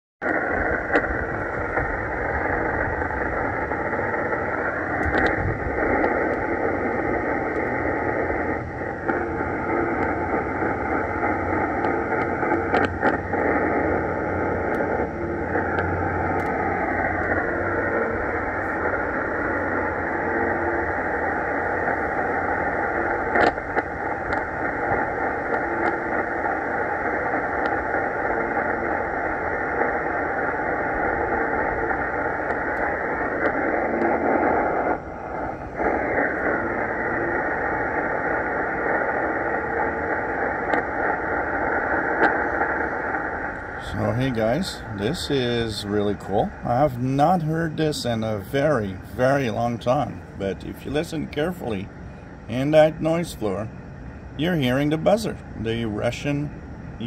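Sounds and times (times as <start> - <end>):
faint radio buzzer: 0.2 - 57.0
sharp static crackles: 0.2 - 57.0
shortwave radio static hiss: 0.2 - 57.0.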